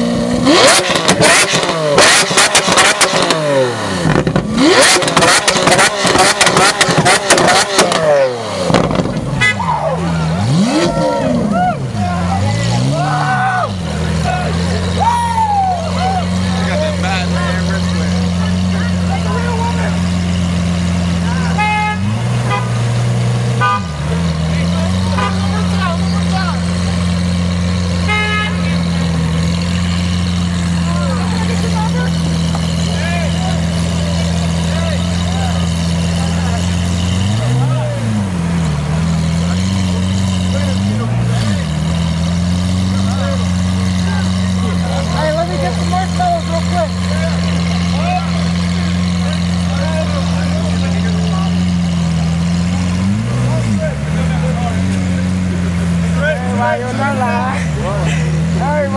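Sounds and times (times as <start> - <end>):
sports car engine revving and idling: 0.0 - 58.9.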